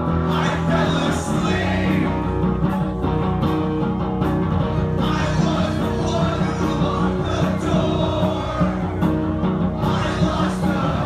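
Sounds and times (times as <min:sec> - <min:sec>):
rock band playing: 0:00.0 - 0:11.0
man singing: 0:00.2 - 0:02.2, 0:05.0 - 0:09.0.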